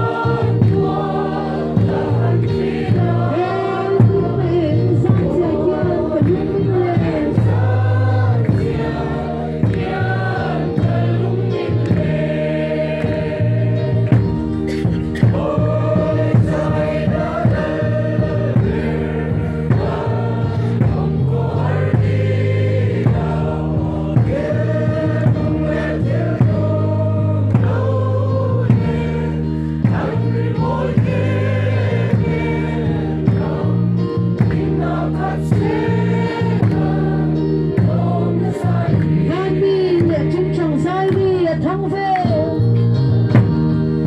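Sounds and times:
steady beat: 0.0 - 40.5
group singing a hymn in unison: 0.0 - 40.7.

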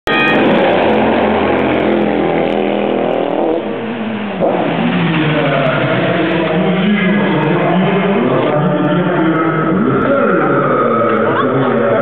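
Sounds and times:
race car engines passing: 0.1 - 12.0.

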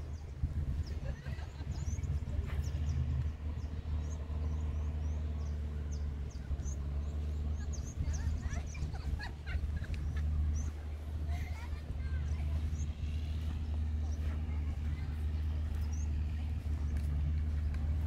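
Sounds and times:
low motor hum: 0.0 - 18.0
small birds chirping: 0.0 - 18.0.

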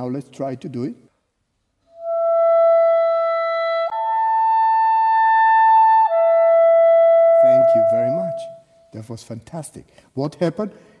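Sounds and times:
clarinet playing long tones: 1.8 - 8.9.

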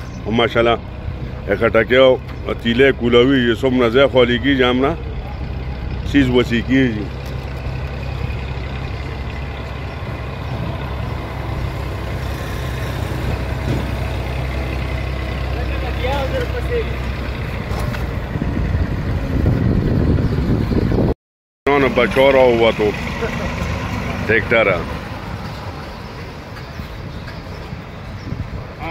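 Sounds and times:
vehicle engine idling: 0.0 - 21.0, 21.7 - 27.9
street noise: 0.0 - 21.1, 21.7 - 28.9.

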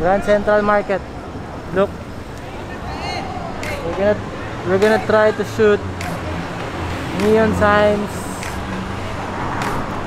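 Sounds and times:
traffic hum and hiss: 0.0 - 10.0.

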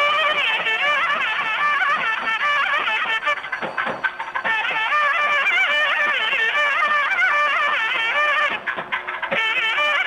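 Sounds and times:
drum strokes: 0.0 - 10.0
reed pipe melody: 0.0 - 10.0.

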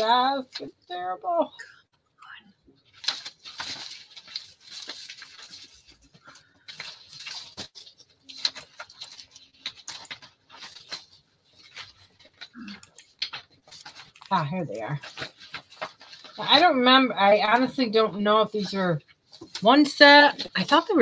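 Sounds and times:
paper rustling and shuffling: 2.7 - 21.0.

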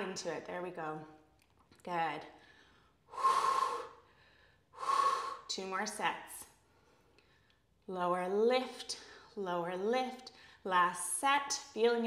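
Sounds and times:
woman breathing hard: 2.4 - 5.5.

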